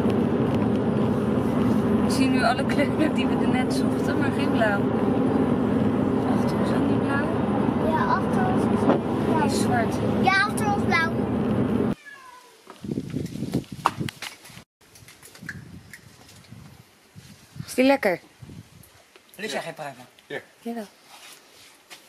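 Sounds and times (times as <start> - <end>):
car road and engine noise: 0.0 - 12.0
high-pitched child-like voice: 7.8 - 8.7, 9.3 - 11.2
rustling and handling noises: 20.9 - 22.0.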